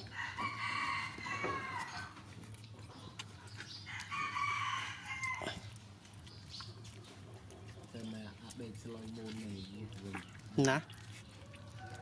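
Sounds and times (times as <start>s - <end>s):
rooster crowing: 0.0s - 2.1s, 3.9s - 5.4s.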